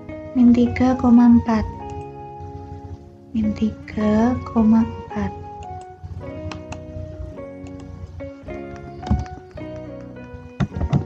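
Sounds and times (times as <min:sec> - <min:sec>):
background music chords: 0:00.0 - 0:11.0.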